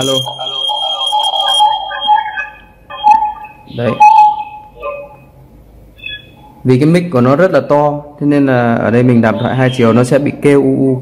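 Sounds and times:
acoustic feedback whistling: 0.0 - 5.4, 6.0 - 6.6, 9.3 - 10.2.

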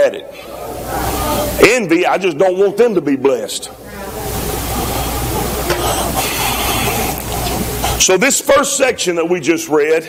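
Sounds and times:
steady rushing hiss: 3.8 - 9.0.

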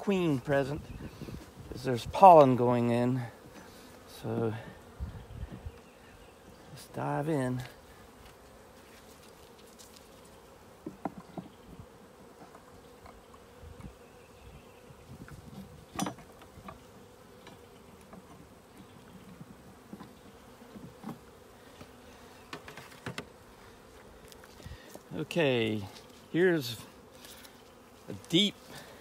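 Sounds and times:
bees buzzing: 0.0 - 29.0
hive tool knocking on wood: 10.8 - 11.6.

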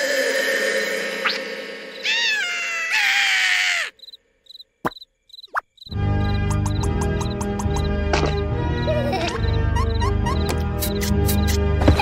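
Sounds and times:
crickets chirping: 0.3 - 2.6, 3.8 - 8.5, 9.3 - 11.6
background music: 5.9 - 12.0.

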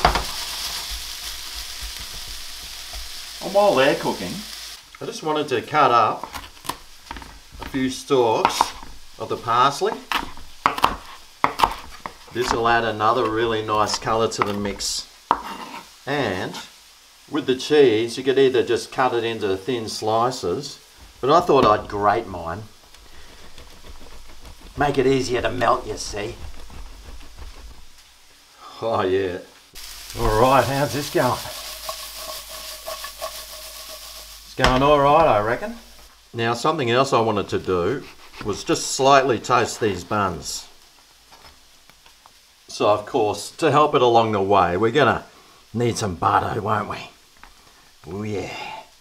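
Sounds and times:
vegetables sizzling in a frying pan: 0.0 - 49.0
wooden spatula stirring: 6.1 - 15.9, 20.9 - 28.4, 29.8 - 36.1, 37.6 - 40.0
knife chopping on wooden board: 9.9 - 12.7, 15.3 - 15.6.

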